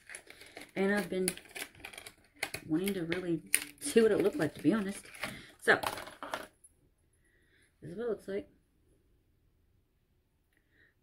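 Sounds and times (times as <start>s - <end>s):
small objects clicking and clattering: 0.0s - 6.6s
woman speaking: 0.7s - 1.4s, 2.6s - 6.2s, 7.8s - 8.6s.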